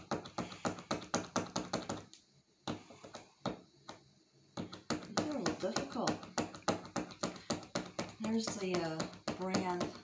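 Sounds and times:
paint marker tapping on paper: 0:00.0 - 0:10.0.

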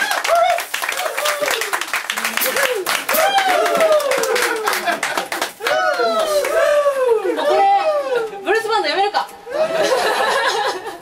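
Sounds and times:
audience clapping: 0:00.0 - 0:06.8.

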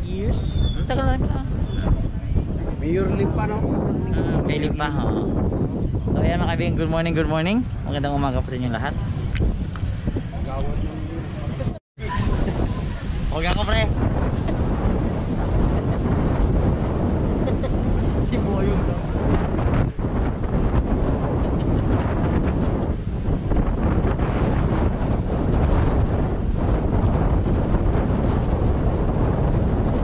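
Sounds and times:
wind buffeting microphone: 0:00.0 - 0:30.0
moving car rumble: 0:07.5 - 0:30.0.

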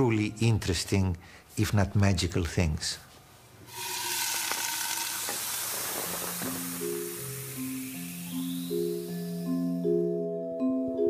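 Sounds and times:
hissing sizzling noise: 0:03.7 - 0:09.9
music with sustained notes: 0:06.0 - 0:11.0.

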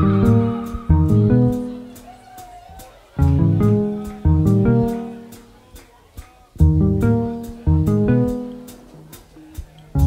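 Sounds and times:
band chords struck: 0:00.0 - 0:02.1, 0:03.2 - 0:05.5, 0:06.6 - 0:10.0
high ticking rhythm: 0:00.0 - 0:02.1, 0:03.2 - 0:10.0.

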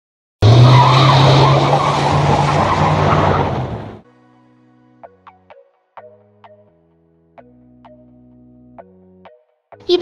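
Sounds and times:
car tyres squealing: 0:00.4 - 0:04.0.

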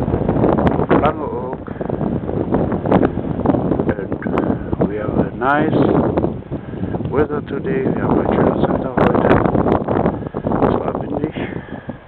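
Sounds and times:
strong wind buffeting microphone: 0:00.0 - 0:12.0.

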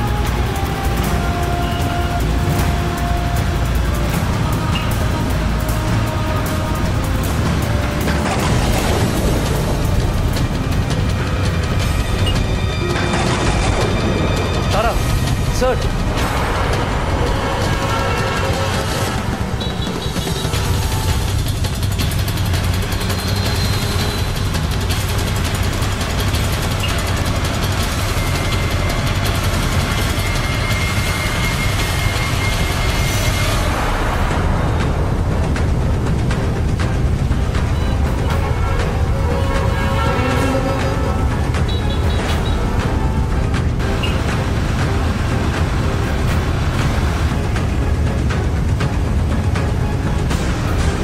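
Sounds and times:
background music: 0:00.0 - 0:51.0
traffic engines droning: 0:00.0 - 0:51.0.

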